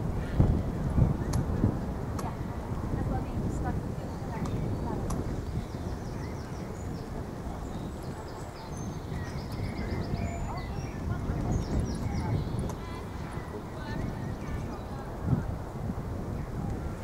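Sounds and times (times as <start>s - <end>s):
steady low rumble: 0.0s - 17.0s
birds singing: 4.0s - 15.2s.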